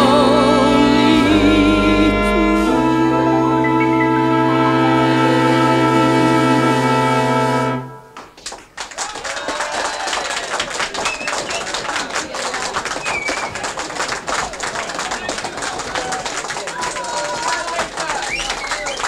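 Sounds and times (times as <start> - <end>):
orchestra holding final chord: 0.0 - 8.2
audience clapping: 8.2 - 19.0
audience voices: 9.0 - 19.0.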